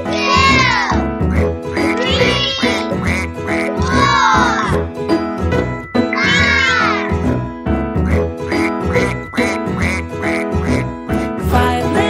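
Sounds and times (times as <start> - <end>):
cheerful children's song: 0.0 - 1.1, 3.7 - 7.4, 11.2 - 12.0.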